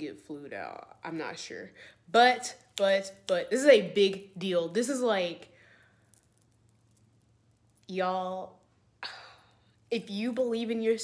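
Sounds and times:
woman speaking: 0.0s - 5.4s, 7.9s - 8.6s, 9.9s - 11.0s.

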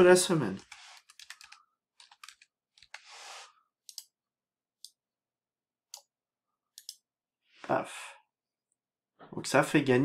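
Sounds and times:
computer keyboard keys clicking: 0.6s - 3.0s, 3.9s - 4.1s.

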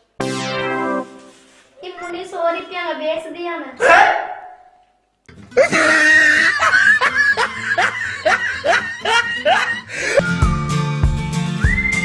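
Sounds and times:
music: 0.0s - 1.6s, 5.3s - 6.0s, 6.8s - 12.0s
person laughing: 5.6s - 10.2s.

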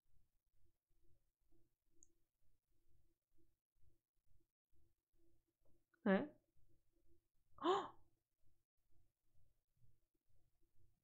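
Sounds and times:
woman's breathy exclamation: 7.6s - 8.0s.

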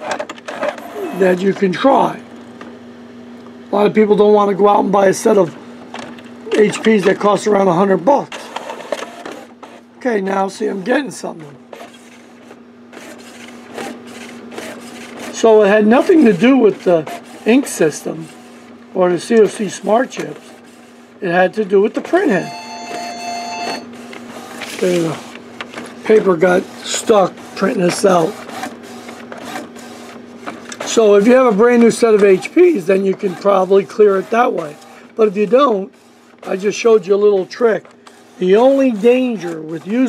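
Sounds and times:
printer low hum: 0.0s - 40.0s.

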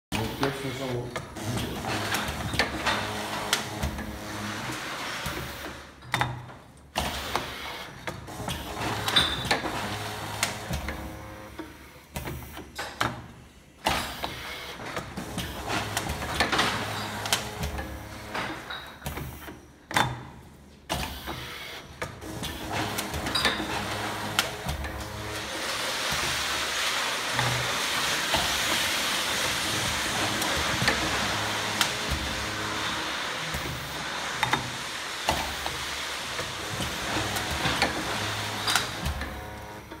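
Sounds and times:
machine clicks and knocks: 5.3s - 25.4s, 36.4s - 40.0s.

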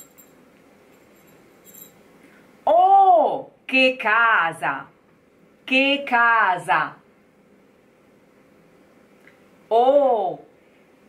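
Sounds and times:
faint metallic clinks of jewellery: 0.0s - 2.0s.

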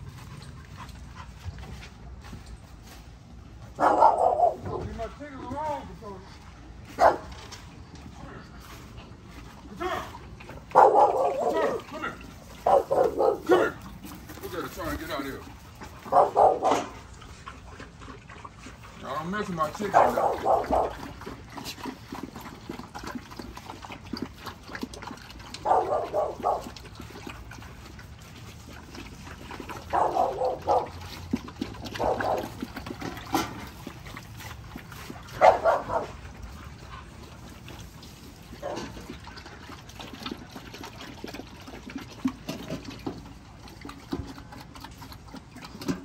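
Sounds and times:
puppies drinking and eating: 0.0s - 46.0s
dog noises: 3.6s - 6.2s, 6.8s - 46.0s.

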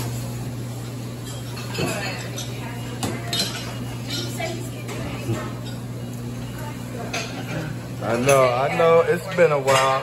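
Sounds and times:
dishes and cutlery clinking: 1.0s - 10.0s
background chatter: 1.6s - 10.0s.

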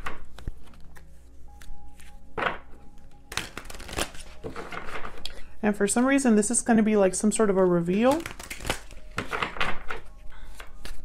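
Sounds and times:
cards being shuffled: 0.0s - 2.2s, 3.3s - 5.3s, 7.9s - 11.0s
soft sustained musical chord: 0.3s - 8.1s.

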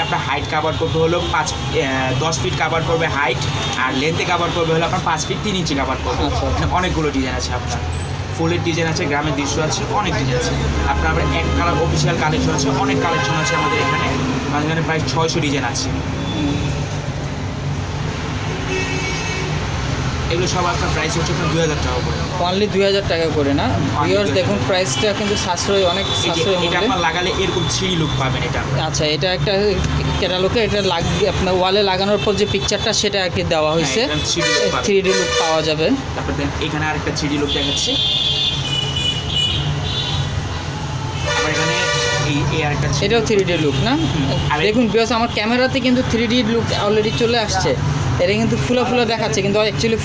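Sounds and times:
road traffic rumble: 0.0s - 50.0s
vehicle horns honking: 12.8s - 14.3s, 18.4s - 19.6s, 24.7s - 28.3s, 33.7s - 35.8s, 37.4s - 40.5s, 41.1s - 42.6s, 43.3s - 45.6s.

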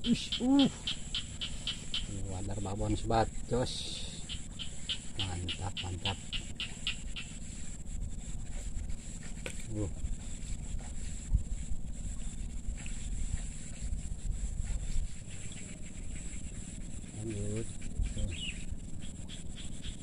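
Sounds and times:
high-pitched insect drone: 0.0s - 20.0s
low uneven rumble: 0.0s - 20.0s.

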